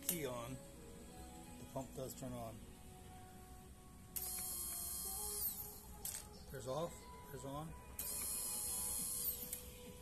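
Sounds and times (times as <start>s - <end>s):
faint steady hum: 0.0s - 10.0s
electric fuel pump whine: 4.2s - 5.9s, 8.0s - 10.0s.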